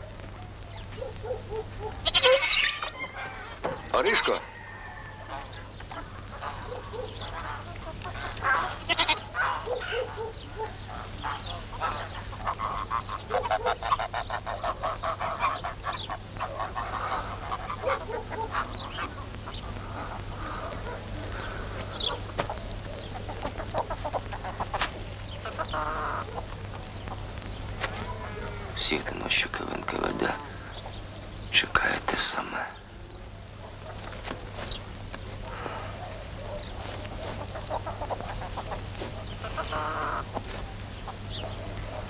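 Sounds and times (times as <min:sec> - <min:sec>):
goat bleating: 0:08.6 - 0:09.3.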